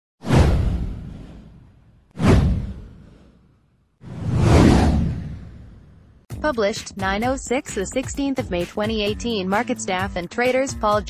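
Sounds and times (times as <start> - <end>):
low boom: 0.2 - 3.4, 4.0 - 6.2
whoosh: 0.2 - 6.3.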